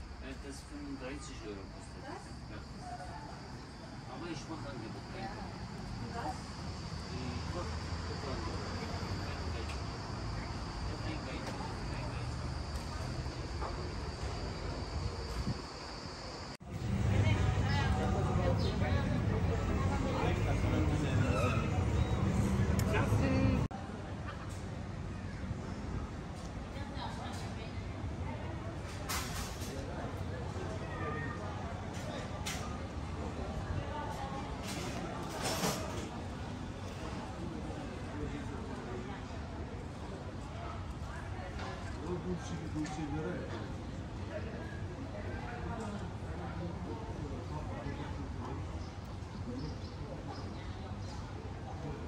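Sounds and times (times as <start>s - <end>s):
faint voices: 0.0s - 52.0s
low rumbling background noise: 0.0s - 52.0s
high-pitched insect drone: 0.8s - 16.6s.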